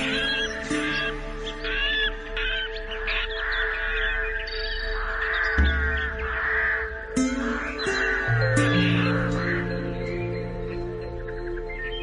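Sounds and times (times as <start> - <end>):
birds chirping and whistling: 0.0 - 12.0
slow relaxation music: 0.0 - 12.0.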